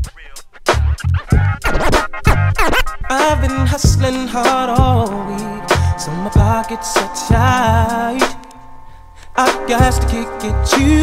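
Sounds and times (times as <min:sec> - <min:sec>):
turntable scratching: 0:00.0 - 0:07.6
kick-drum beat: 0:03.8 - 0:04.1, 0:06.4 - 0:06.6.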